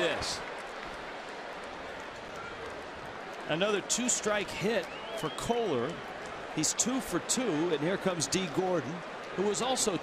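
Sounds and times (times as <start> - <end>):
crowd hubbub of distant voices: 0.0 - 10.0.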